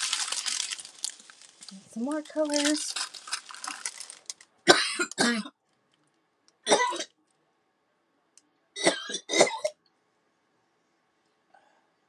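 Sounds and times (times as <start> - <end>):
plastic bags crinkling: 0.0 - 5.2
woman coughing: 4.7 - 5.5, 6.7 - 7.1, 8.8 - 9.8.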